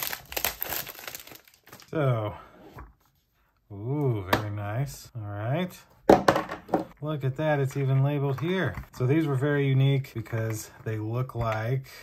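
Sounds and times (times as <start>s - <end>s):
plastic shrink wrap crinkling: 0.0s - 2.0s.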